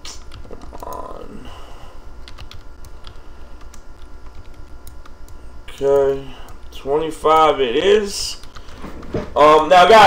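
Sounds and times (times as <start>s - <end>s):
pulsing low hum: 0.0s - 9.4s.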